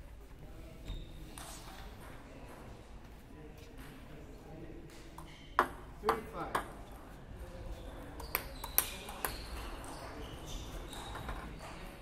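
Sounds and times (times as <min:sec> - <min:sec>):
table tennis ball bouncing: 0:05.2 - 0:06.9, 0:08.2 - 0:11.4.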